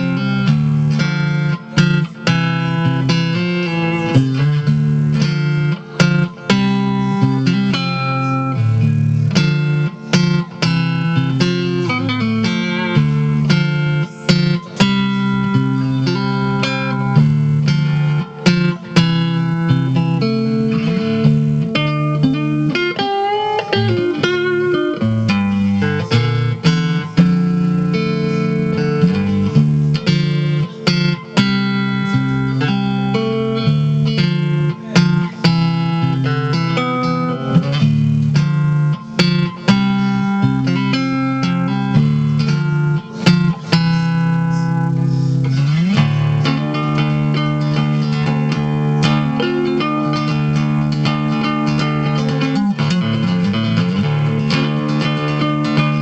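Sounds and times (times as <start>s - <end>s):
electric guitar playing: 0.0s - 56.0s.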